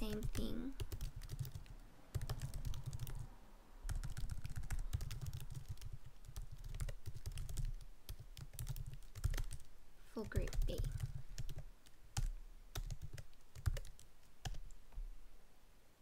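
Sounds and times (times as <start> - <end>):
typing on computer keyboard: 0.0 - 3.3, 3.9 - 14.8.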